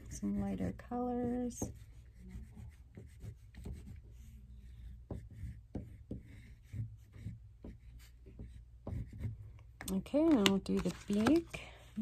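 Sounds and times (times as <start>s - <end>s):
oil pastel rubbing on paper: 0.0s - 9.4s.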